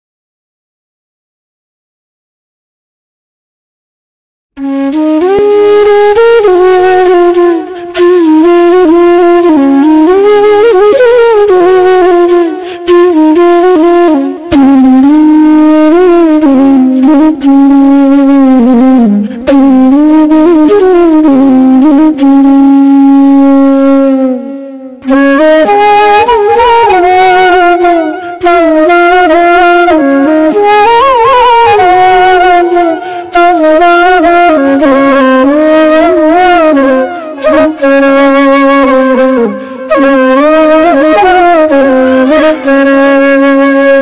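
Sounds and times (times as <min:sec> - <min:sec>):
slow flute melody: 0:04.6 - 0:44.0.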